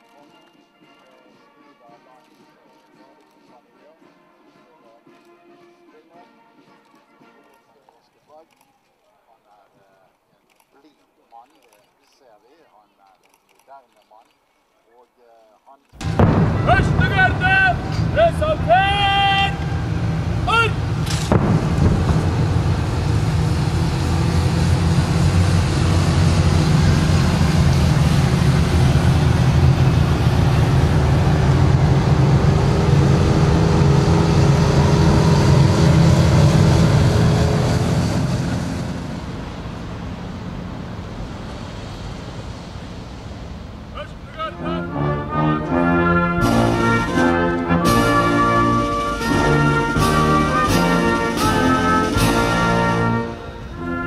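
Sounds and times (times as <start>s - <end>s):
military brass band playing: 4.0s - 7.9s, 16.0s - 39.8s, 44.0s - 54.0s
loud low rumble: 16.0s - 53.9s.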